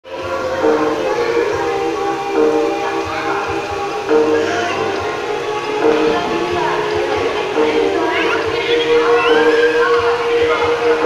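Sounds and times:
melody of long held notes: 0:00.0 - 0:11.0.

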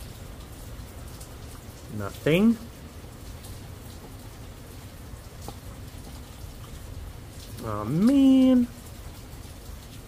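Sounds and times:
steady rain: 0:00.0 - 0:10.0.

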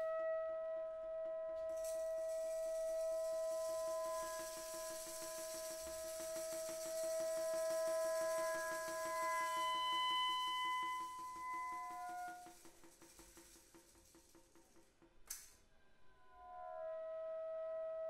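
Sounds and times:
steady ringing tones: 0:01.8 - 0:13.0
high hiss: 0:01.8 - 0:14.6.

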